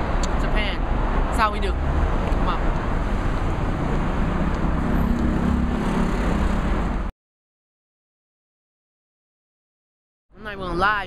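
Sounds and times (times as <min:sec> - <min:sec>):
passing vehicle engine hum: 0:00.0 - 0:07.1
traffic rumble: 0:00.0 - 0:07.1.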